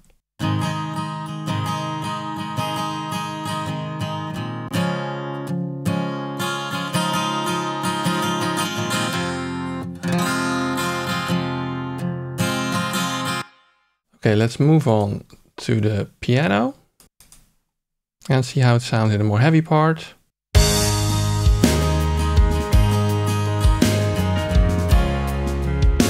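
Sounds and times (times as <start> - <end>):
strummed acoustic guitar: 0.4 - 13.6, 20.6 - 26.0.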